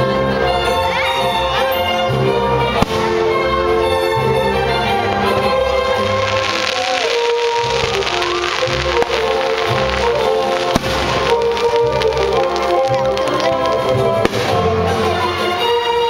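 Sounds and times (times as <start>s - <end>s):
orchestral music: 0.0s - 16.0s
fireworks bursting: 2.7s - 15.8s
sharp firework cracks: 2.8s - 3.3s, 4.9s - 15.0s.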